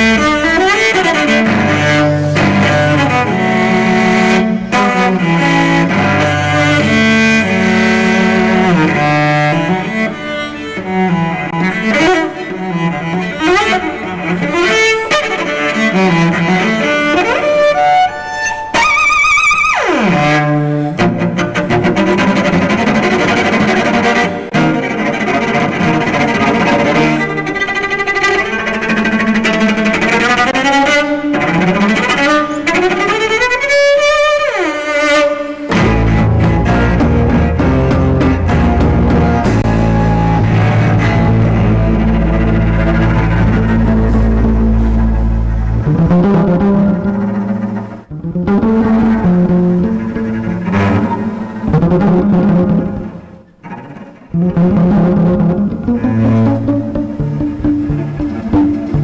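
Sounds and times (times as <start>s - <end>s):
bowed cello runs: 0.0s - 59.0s.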